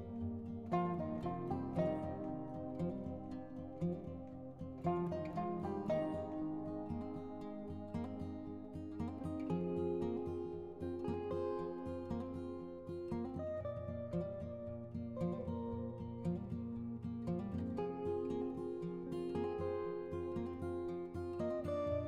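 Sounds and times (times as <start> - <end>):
instrumental music with plucked notes: 0.0 - 22.0.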